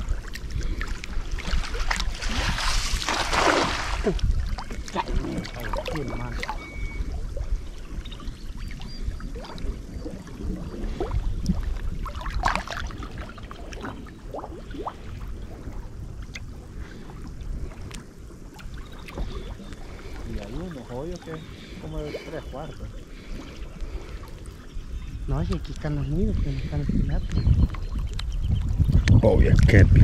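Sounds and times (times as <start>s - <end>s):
small splashes: 0.0s - 6.6s, 8.6s - 15.2s
water lapping and sloshing: 0.0s - 26.9s
low rumble of wind: 0.0s - 30.0s.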